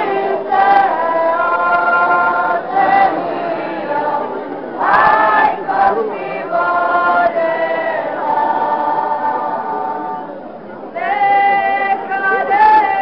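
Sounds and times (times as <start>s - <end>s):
group singing unaccompanied: 0.0s - 13.0s.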